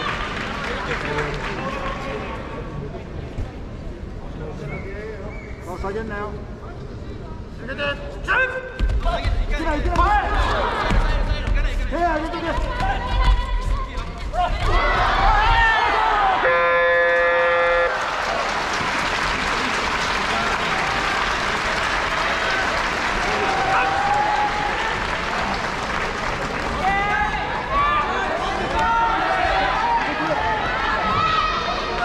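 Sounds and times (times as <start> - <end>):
crowd cheering and clapping: 0.0 - 2.2, 14.6 - 32.0
electronic buzzer: 16.4 - 17.9.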